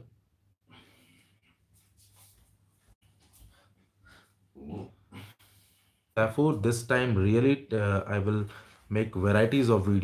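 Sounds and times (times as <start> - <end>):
short low vocal sounds: 4.5 - 5.4.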